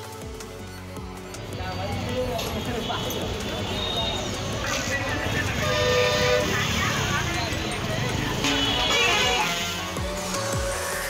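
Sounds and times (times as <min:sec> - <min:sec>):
street noise: 0:00.0 - 0:11.0
crowd chatter: 0:01.6 - 0:09.6
vehicle horn: 0:02.8 - 0:07.2, 0:08.3 - 0:10.1.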